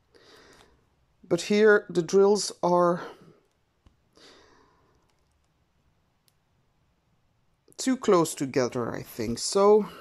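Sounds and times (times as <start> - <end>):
soft exhale: 4.2 - 5.0
faint clicks: 4.9 - 5.6.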